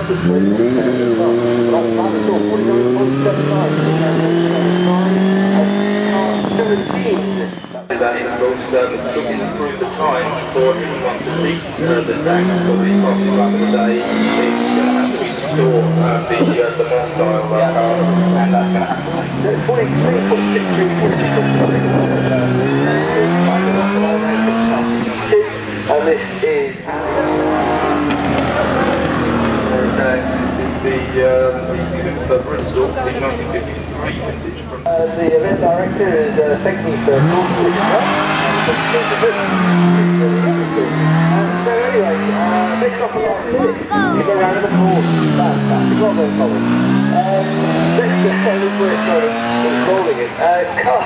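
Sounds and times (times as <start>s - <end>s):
racing car engine revving: 0.0s - 51.0s.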